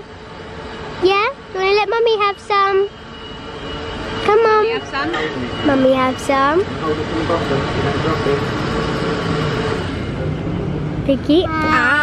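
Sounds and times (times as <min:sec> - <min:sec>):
steady background din: 0:00.0 - 0:12.0.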